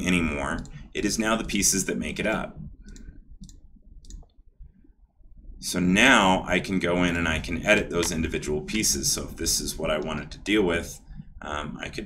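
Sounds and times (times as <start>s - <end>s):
computer mouse clicks: 0.5s - 0.8s, 2.3s - 4.4s.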